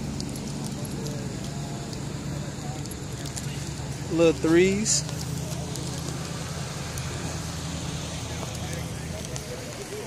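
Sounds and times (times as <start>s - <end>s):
car engine idling: 0.0s - 10.0s
faint footsteps on pavement: 0.0s - 10.0s.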